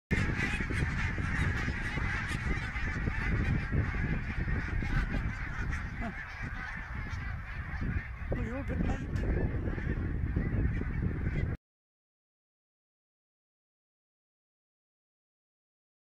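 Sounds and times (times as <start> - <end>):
geese honking: 0.1 - 11.6.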